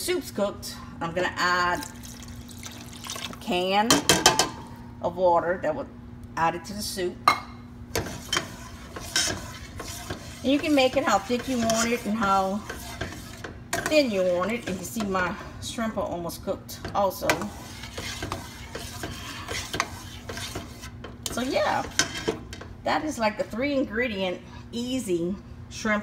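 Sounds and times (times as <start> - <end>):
spoon knocking and scraping pot: 7.3 - 15.4, 16.8 - 22.7.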